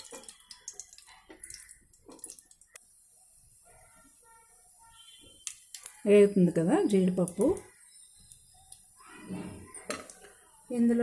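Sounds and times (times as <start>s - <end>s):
liquid pouring into a pot: 0.0s - 2.8s.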